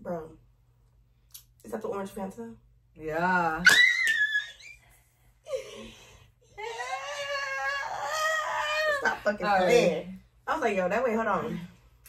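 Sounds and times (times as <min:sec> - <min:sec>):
woman squealing: 0:03.6 - 0:04.8, 0:06.6 - 0:09.9.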